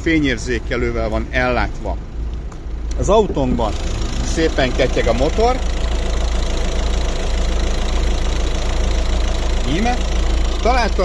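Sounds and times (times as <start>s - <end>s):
diesel engine idling: 0.0s - 11.0s.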